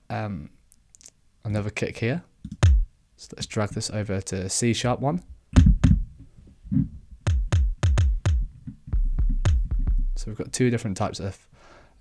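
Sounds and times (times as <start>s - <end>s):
electronic kick drum hits: 2.6s - 2.9s, 5.6s - 6.2s, 7.2s - 10.3s.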